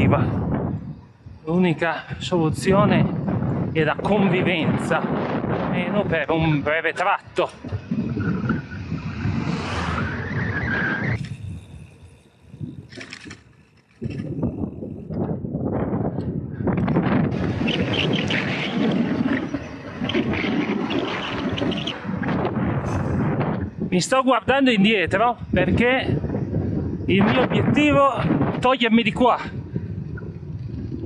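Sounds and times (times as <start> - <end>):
tyres rushing on asphalt: 0.0 - 14.9, 17.0 - 31.0
wind buffeting microphone: 0.0 - 31.0.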